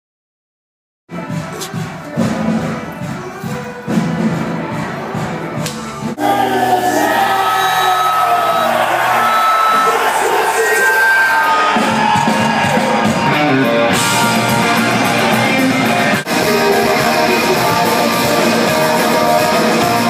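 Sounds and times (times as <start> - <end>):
crowd cheering and singing: 1.1 - 20.0
live band music: 1.1 - 20.0.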